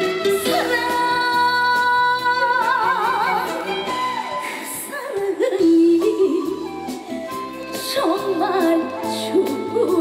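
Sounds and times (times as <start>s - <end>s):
backing music: 0.0s - 10.0s
woman singing: 0.2s - 10.0s.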